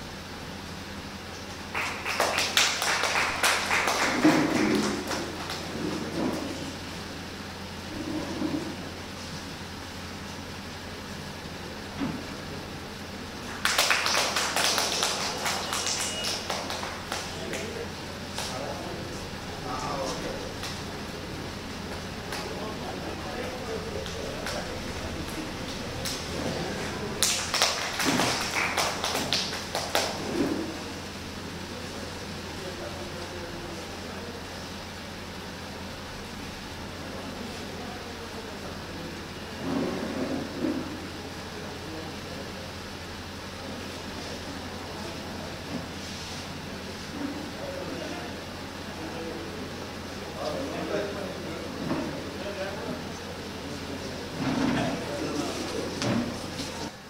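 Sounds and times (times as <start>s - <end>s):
low background hum: 0.0s - 57.0s
group clapping hands: 1.5s - 6.6s, 13.4s - 18.8s, 19.8s - 21.1s, 21.8s - 30.9s.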